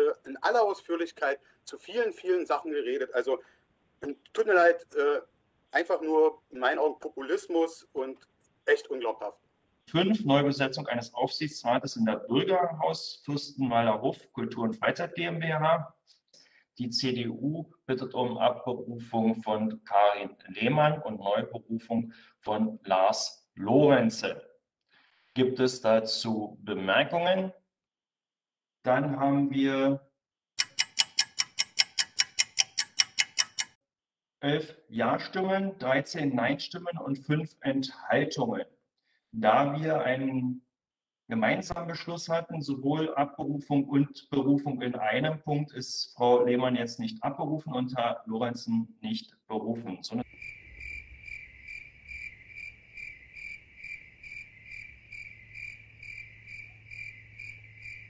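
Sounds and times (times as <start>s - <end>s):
clock-like ticking: 30.6s - 33.8s
cricket chirping: 50.2s - 58.0s.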